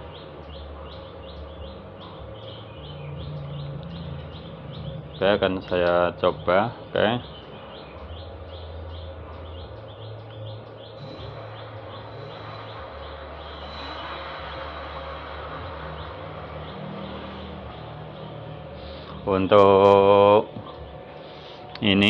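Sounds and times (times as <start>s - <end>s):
electric hub motor humming: 0.0s - 22.0s.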